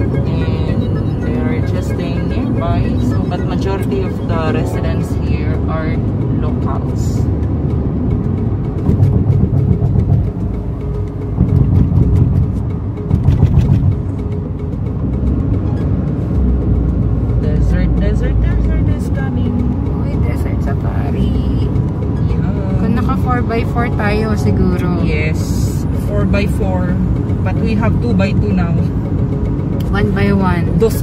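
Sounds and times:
voices or music: 0.0 - 7.3
car road and engine rumble: 0.0 - 31.0.

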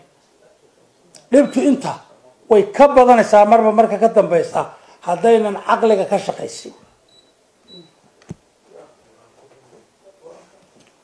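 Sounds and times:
faint murmurs or breaths: 4.7 - 5.1.

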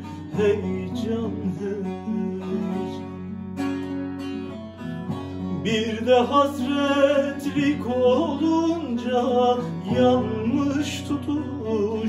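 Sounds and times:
person singing: 0.0 - 3.2, 5.6 - 12.0
classical guitar: 0.0 - 12.0.

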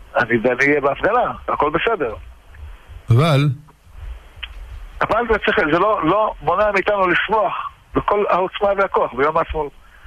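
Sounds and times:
person talking over phone line: 3.1 - 3.7.

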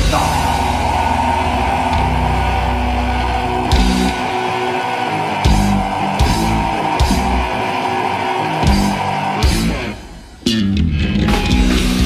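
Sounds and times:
full band accents: 0.0 - 12.0.

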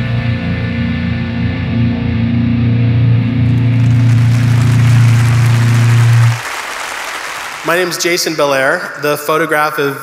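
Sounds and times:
audience applause: 3.3 - 8.8.

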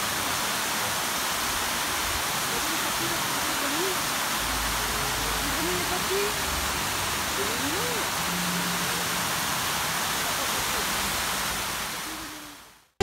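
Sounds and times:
fountain water splashing: 0.0 - 12.9.

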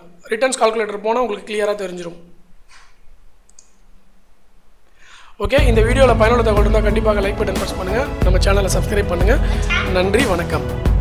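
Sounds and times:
computer mouse clicks: 2.7 - 3.8.

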